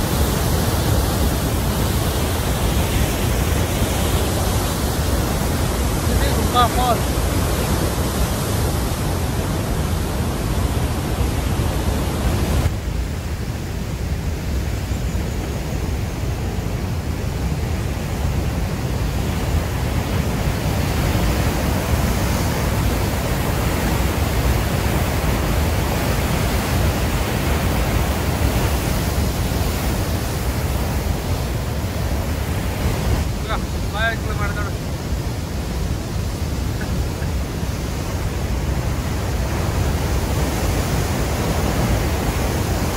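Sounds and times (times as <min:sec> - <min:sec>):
white water rushing: 0:00.0 - 0:42.9.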